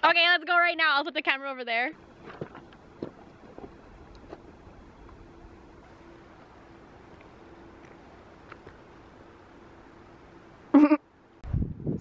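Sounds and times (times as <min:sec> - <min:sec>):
faint outdoor hiss: 0:00.0 - 0:12.0
low rumble on microphone: 0:11.4 - 0:12.0.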